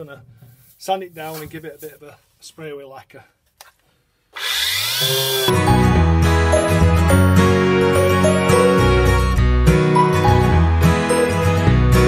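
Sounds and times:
orbital sander on sheet steel: 4.4s - 5.5s
background music: 5.5s - 12.0s.

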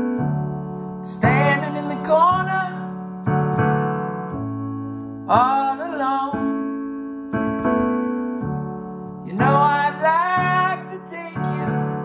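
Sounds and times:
digital piano chords: 0.0s - 12.0s
person singing: 1.0s - 3.1s, 5.3s - 6.8s, 9.2s - 12.0s.

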